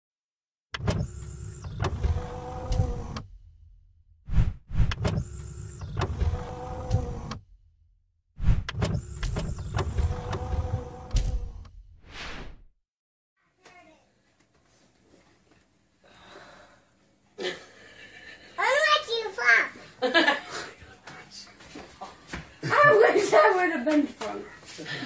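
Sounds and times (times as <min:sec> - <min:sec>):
motorised whirring and clunking: 0:00.7 - 0:03.5, 0:04.8 - 0:07.6, 0:08.6 - 0:11.8.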